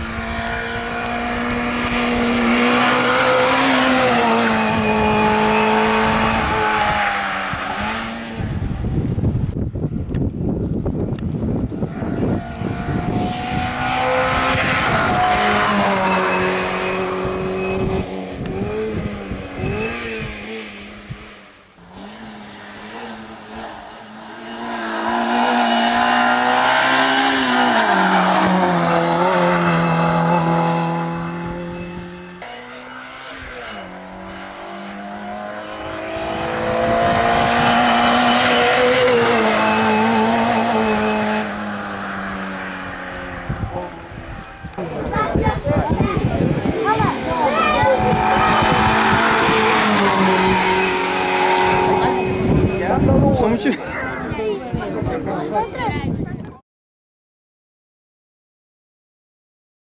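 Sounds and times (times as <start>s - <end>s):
racing car engine revving past: 0.0s - 8.7s, 11.6s - 54.4s.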